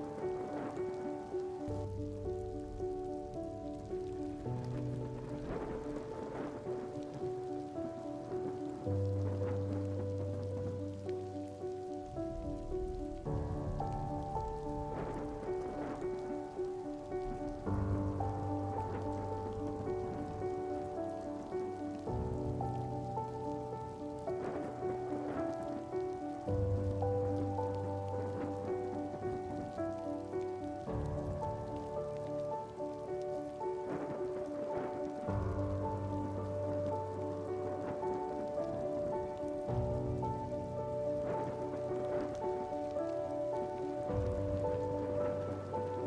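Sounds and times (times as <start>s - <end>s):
rain falling: 0.0s - 46.0s
slow music of held chords: 0.0s - 46.0s.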